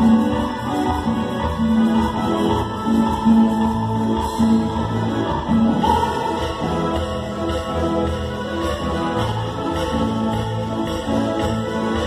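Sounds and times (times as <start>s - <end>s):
live tropical dance band: 0.0s - 12.0s.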